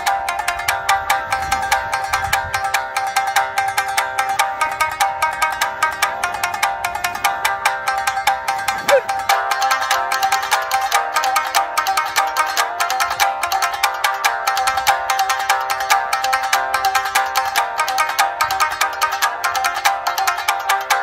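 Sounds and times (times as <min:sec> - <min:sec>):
plucked shamisen notes: 0:00.0 - 0:21.0.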